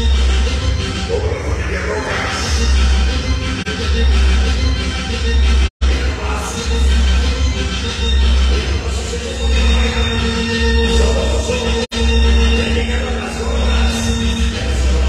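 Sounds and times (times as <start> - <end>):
loud dance music with heavy bass: 0.0 - 15.0.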